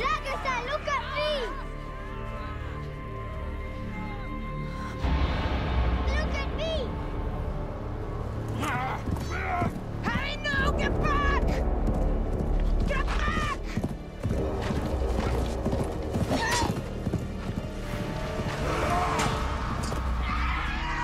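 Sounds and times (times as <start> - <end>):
dramatic film music: 0.0 - 21.0.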